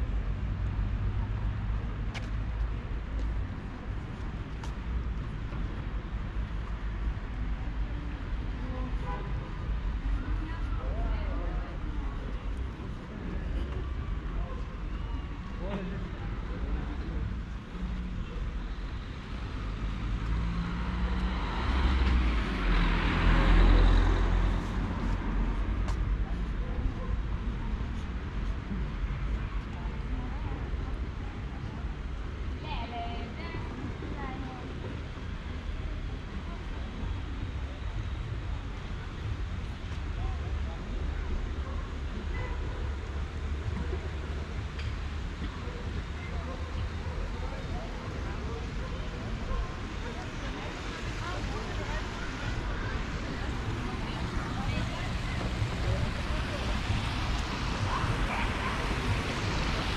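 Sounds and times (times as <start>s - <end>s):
people's voices: 1.1s - 59.9s
car passing: 19.2s - 26.0s, 43.3s - 59.9s.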